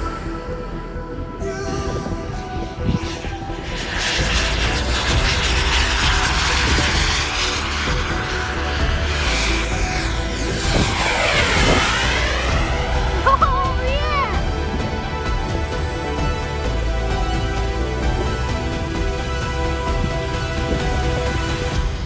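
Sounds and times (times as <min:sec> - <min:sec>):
model jet engine passing: 0:02.7 - 0:15.3.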